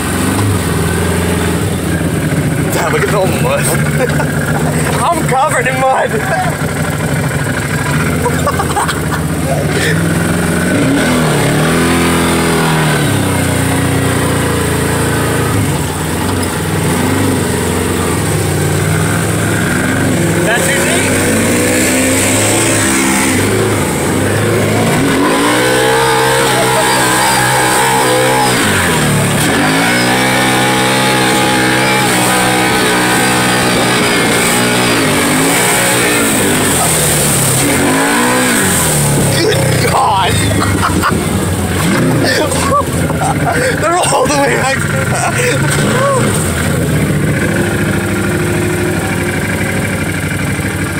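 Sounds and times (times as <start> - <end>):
utility vehicle engine revving: 0.0 - 50.9.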